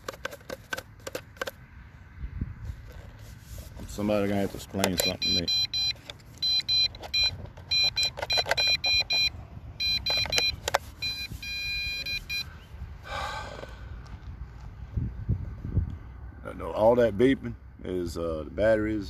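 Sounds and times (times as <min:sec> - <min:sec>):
rustle: 0:02.5 - 0:05.1.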